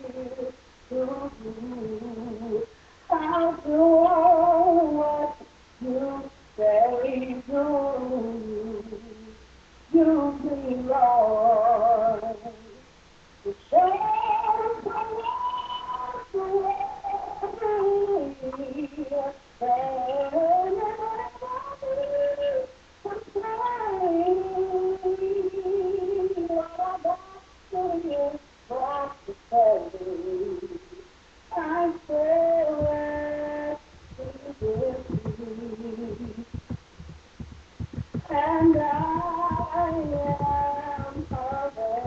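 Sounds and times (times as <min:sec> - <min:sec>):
woman singing gospel solo: 0:00.0 - 0:12.8, 0:13.5 - 0:42.0
soft low thumps: 0:32.6 - 0:42.0.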